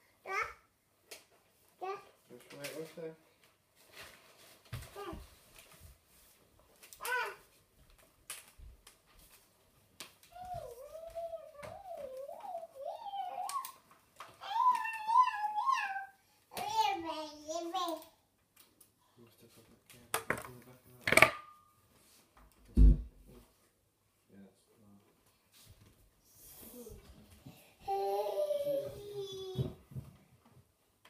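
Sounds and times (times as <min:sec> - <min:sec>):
child sing-song calls: 0:10.3 - 0:13.8, 0:14.4 - 0:18.0
dull thump: 0:22.8 - 0:23.2.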